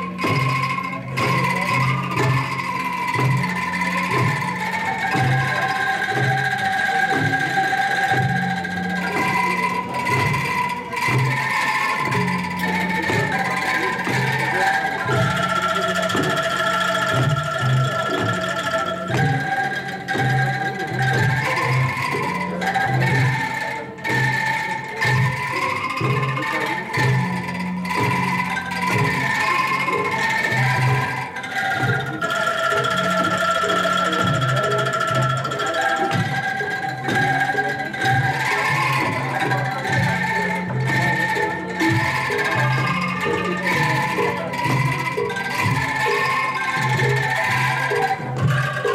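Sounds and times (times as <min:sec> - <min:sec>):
drum strokes: 0:00.0 - 0:48.9
low percussion beat: 0:00.0 - 0:48.9
shaken bamboo angklung chords: 0:00.0 - 0:48.9.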